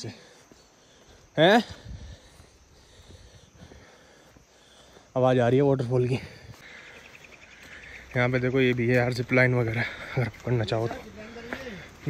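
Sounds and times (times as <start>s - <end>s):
insect trilling: 0.0s - 12.0s.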